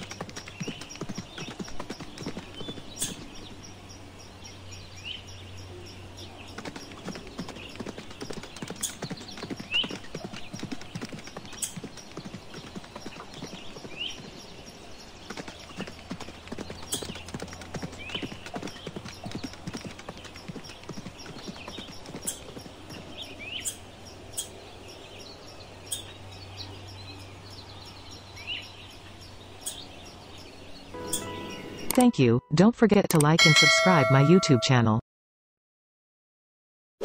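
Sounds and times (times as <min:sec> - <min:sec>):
horse hooves trotting: 0:00.0 - 0:03.4, 0:06.5 - 0:23.4.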